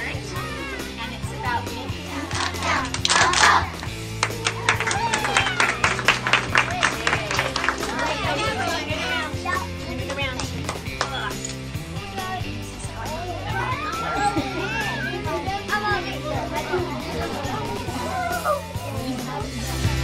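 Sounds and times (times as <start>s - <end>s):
children chattering: 0.0s - 20.0s
music playing: 0.0s - 20.0s.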